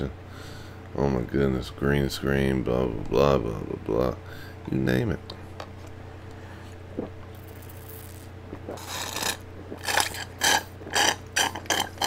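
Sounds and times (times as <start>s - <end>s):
slurping through a straw: 6.9s - 12.0s.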